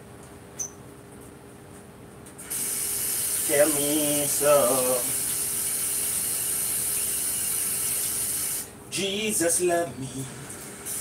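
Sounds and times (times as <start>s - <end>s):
steady hiss: 2.4s - 8.8s.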